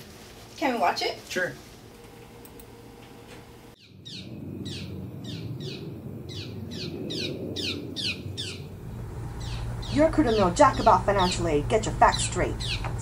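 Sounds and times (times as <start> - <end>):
bird chirping: 3.8 - 13.0.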